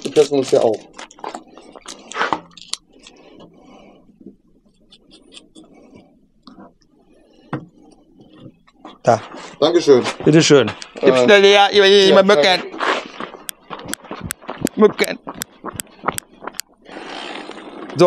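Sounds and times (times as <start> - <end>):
sharp clicks: 13.4 - 16.7.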